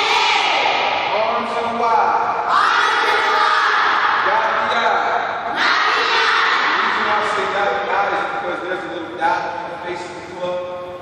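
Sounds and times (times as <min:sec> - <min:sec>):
children calling out together: 0:05.5 - 0:07.0.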